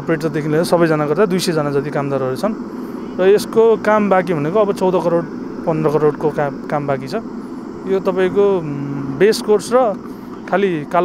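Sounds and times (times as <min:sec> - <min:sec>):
man speaking: 0:00.0 - 0:02.6, 0:03.2 - 0:11.0.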